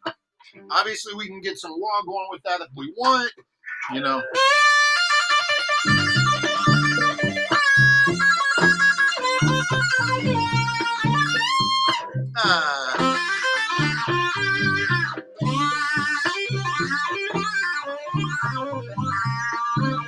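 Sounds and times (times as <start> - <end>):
distorted violin with delay: 3.9 - 20.0.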